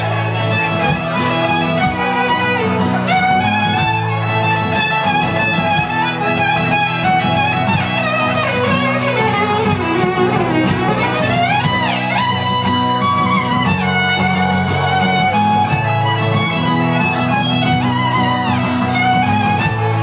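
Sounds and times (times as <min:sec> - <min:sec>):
drums: 0:00.0 - 0:20.0
fiddle lead melody: 0:00.0 - 0:20.0
strummed guitar: 0:00.0 - 0:20.0.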